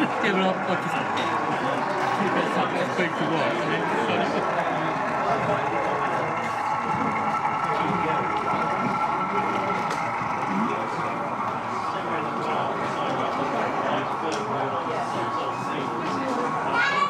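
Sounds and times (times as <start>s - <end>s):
indistinct chatter of crowd: 0.0s - 17.0s.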